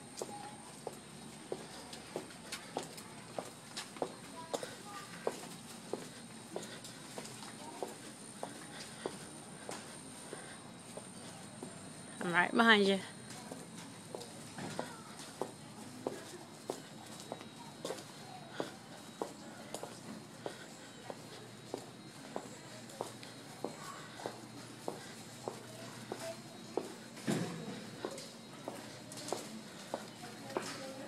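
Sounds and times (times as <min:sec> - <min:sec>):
footsteps on concrete: 0:00.0 - 0:31.0.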